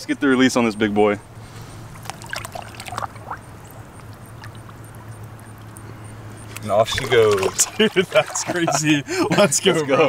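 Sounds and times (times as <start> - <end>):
low steady hum: 0.0 - 10.0
water sloshing and splashing: 1.4 - 9.0.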